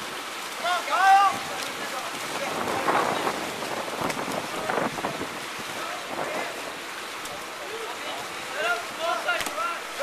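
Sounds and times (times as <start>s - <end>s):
swimmers splashing water: 0.0s - 10.0s.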